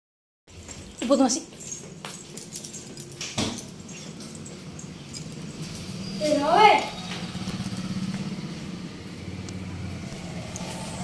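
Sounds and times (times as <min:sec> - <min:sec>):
engine humming: 0:02.6 - 0:11.0.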